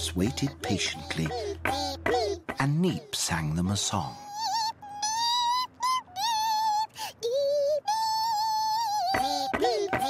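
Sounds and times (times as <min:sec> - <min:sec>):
cartoon character singing high: 0:04.0 - 0:10.0.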